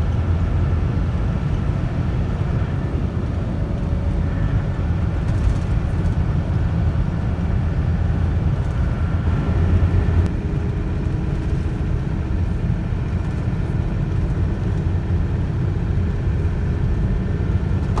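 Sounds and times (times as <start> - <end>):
engine and tyre rumble in cabin: 0.0 - 18.0.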